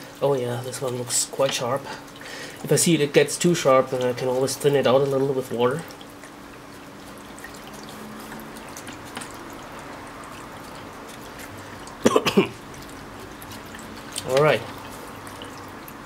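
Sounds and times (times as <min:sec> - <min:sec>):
liquid swishing and dripping: 0:00.0 - 0:16.0
person clearing throat: 0:12.0 - 0:12.6.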